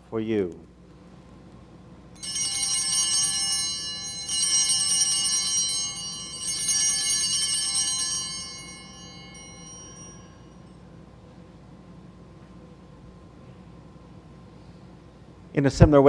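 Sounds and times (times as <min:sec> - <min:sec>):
bright high bells ringing: 0:02.2 - 0:11.0.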